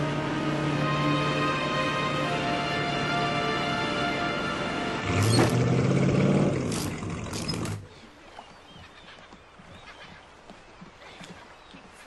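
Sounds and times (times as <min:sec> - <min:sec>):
motorboat engine humming: 0:00.0 - 0:12.0.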